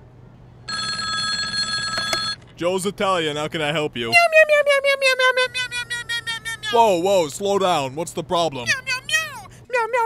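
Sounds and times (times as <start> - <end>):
landline telephone ringing: 0.7 - 2.4.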